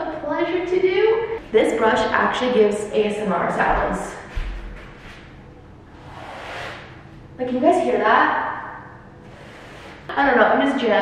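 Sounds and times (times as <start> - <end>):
brush swishing across wall: 4.3 - 7.0, 9.2 - 10.1.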